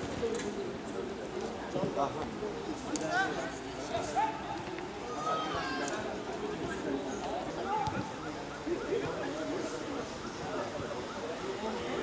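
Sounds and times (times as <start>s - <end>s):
outdoor background: 0.0s - 12.0s.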